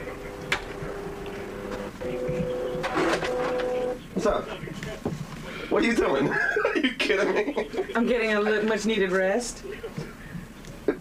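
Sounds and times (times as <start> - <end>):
office printer buzzing: 0.0 - 4.0.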